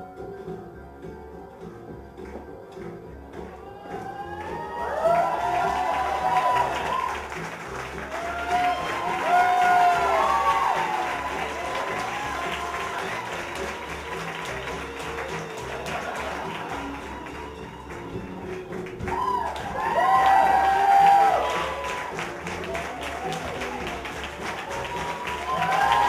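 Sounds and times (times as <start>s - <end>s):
backing music with bass line: 0.0s - 26.0s
audience applause: 2.2s - 26.0s
crowd cheering and whooping: 3.5s - 18.1s, 18.9s - 26.0s.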